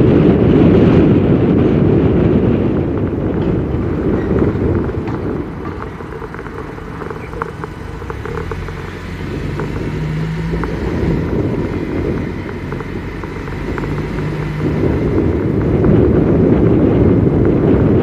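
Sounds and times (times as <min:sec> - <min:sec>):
car engine and tyre rumble: 0:00.0 - 0:18.0
faint ticks: 0:05.1 - 0:14.9.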